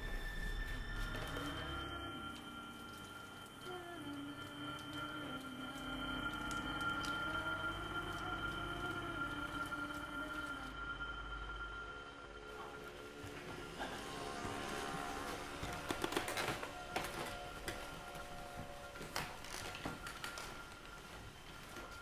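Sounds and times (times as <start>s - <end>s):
slow film score music: 0.0s - 22.0s.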